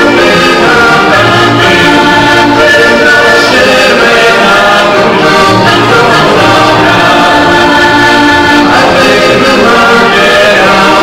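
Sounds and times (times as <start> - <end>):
button accordion playing: 0.0 - 11.0.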